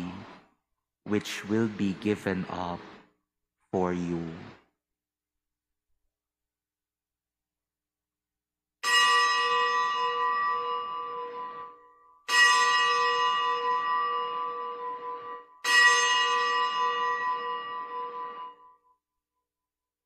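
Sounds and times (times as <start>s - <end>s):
bells ringing: 8.8s - 18.8s.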